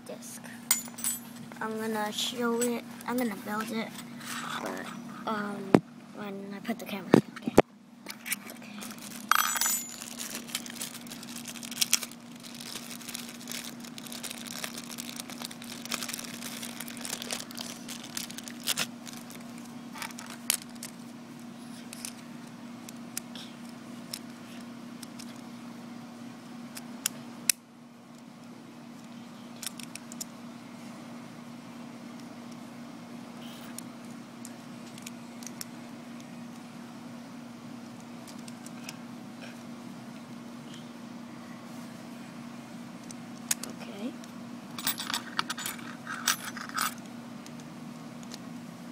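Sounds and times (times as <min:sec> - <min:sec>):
steady low hum: 0:00.0 - 0:48.9
plastic parts clicking and rustling: 0:08.1 - 0:19.4, 0:20.0 - 0:21.0, 0:29.6 - 0:30.3.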